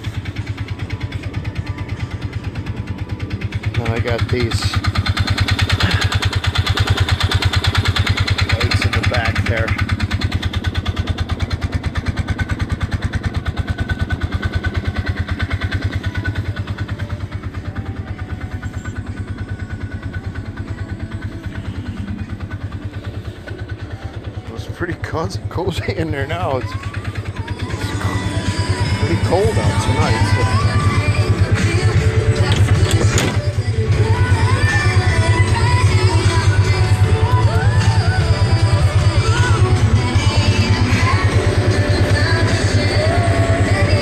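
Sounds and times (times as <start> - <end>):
vehicle engine running: 0.0 - 44.0.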